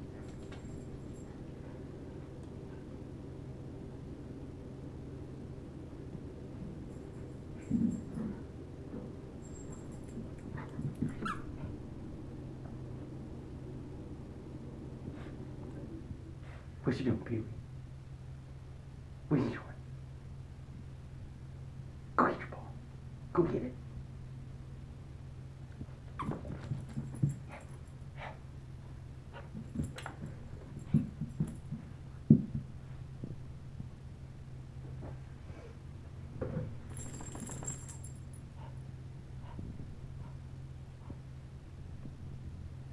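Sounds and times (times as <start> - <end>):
low steady hum: 0.0 - 42.9
small dog whining: 11.1 - 11.7.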